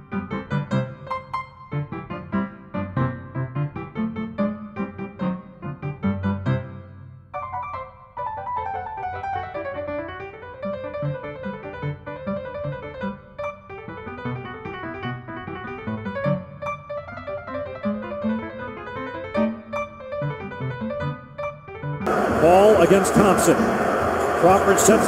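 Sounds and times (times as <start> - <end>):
piano music: 0.0 - 25.0
arena crowd noise: 22.1 - 25.0
commentator speaking: 22.1 - 25.0.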